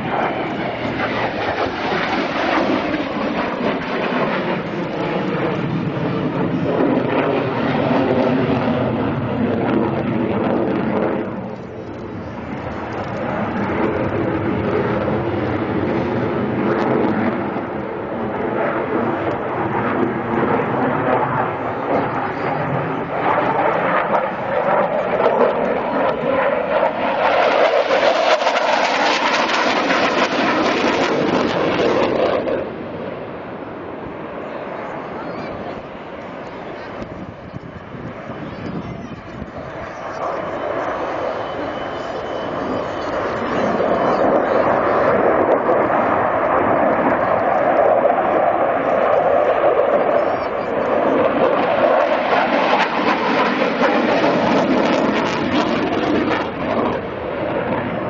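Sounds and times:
fighter jet flying past: 0:00.0 - 0:58.0.

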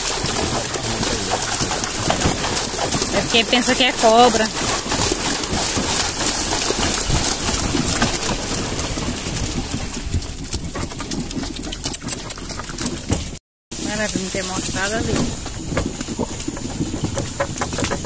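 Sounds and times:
cart knocking and rattling: 0:00.0 - 0:18.0
horse-drawn cart on muddy track: 0:00.0 - 0:18.0.

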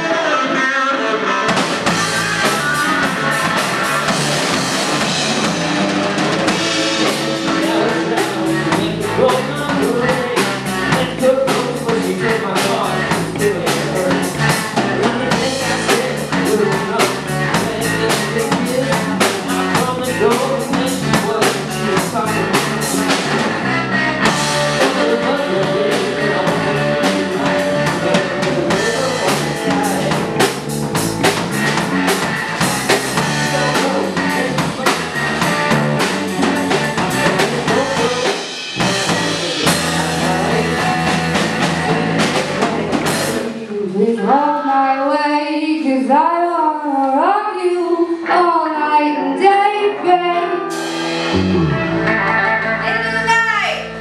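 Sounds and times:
electric guitar: 0:00.0 - 0:43.6, 0:48.0 - 0:54.0
bass guitar: 0:00.0 - 0:43.8, 0:48.3 - 0:54.0
drum kit: 0:01.4 - 0:43.5, 0:50.7 - 0:54.0.

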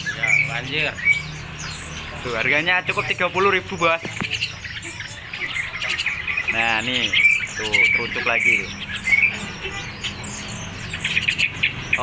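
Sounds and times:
songbirds chirping: 0:00.0 - 0:12.0.

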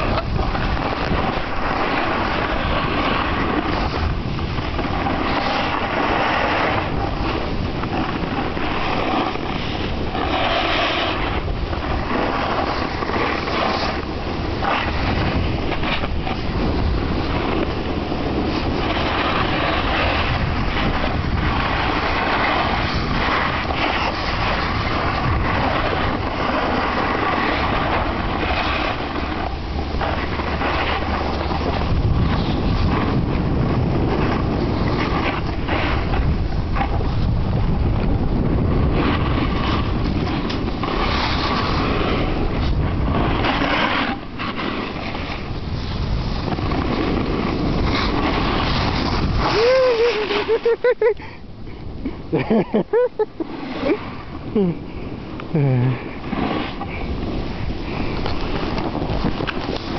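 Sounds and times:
snowboards scraping on snow: 0:00.0 - 0:59.9
wind buffeting microphone: 0:00.0 - 0:59.9.

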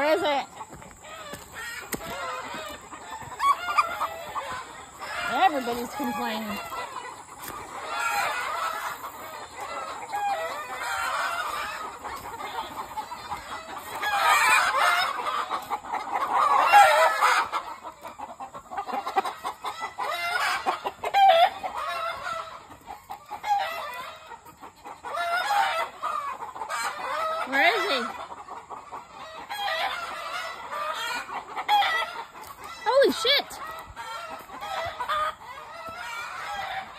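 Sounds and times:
chickens clucking and calling: 0:00.0 - 0:36.9.

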